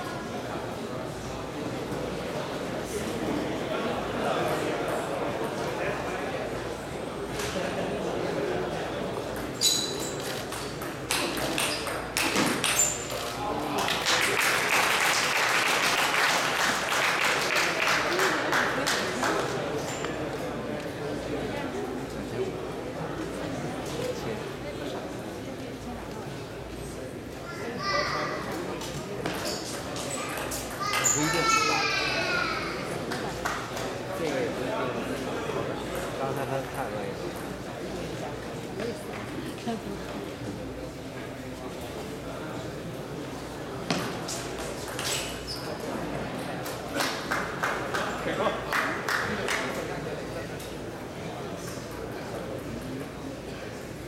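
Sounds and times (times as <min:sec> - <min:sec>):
spectators applauding: 0:13.7 - 0:19.6, 0:47.0 - 0:49.7.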